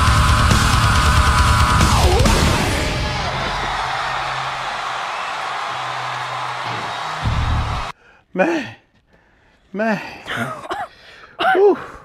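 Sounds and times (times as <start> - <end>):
heavy metal band playing: 0.0 - 4.8, 7.2 - 7.9
crowd cheering: 0.0 - 8.0.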